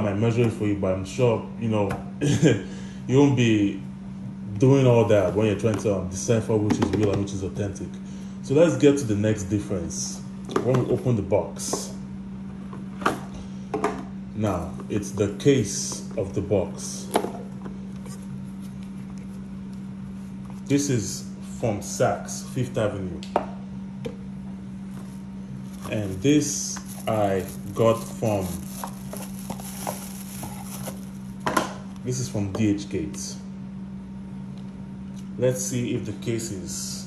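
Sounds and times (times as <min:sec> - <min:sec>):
steady low hum: 0:00.0 - 0:37.0
cardboard boxes handled: 0:24.9 - 0:31.6.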